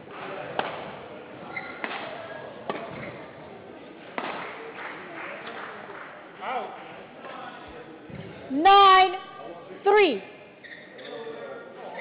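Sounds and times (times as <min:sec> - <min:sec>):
rackets hitting shuttlecock: 0:00.1 - 0:01.0, 0:01.7 - 0:03.2, 0:04.1 - 0:04.6.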